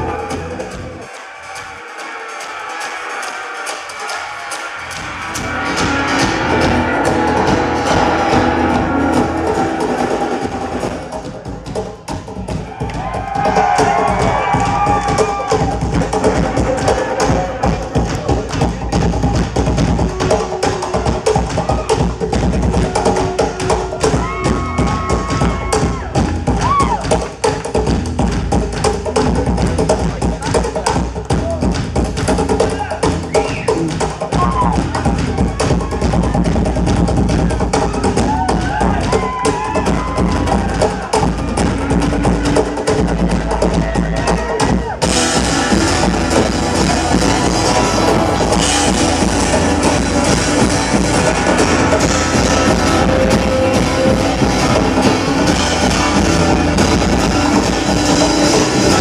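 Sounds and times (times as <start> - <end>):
electric bass: 0.0 - 1.7, 4.1 - 59.0
drum kit: 3.1 - 59.0.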